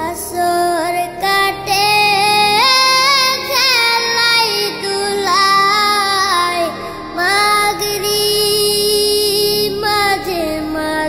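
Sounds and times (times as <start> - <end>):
person singing devotional song: 0.0 - 11.0.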